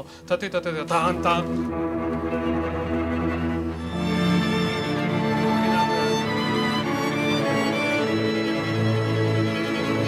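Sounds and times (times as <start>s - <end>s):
orchestra strings holding chords: 1.0s - 10.0s.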